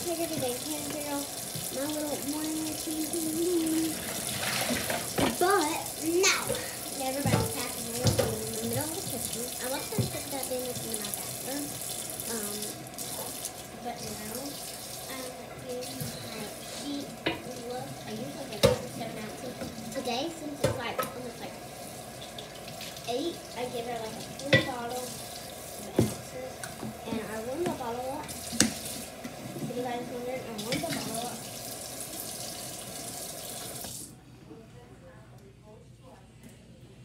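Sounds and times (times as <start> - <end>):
kitchen tap running: 0.0 - 34.2.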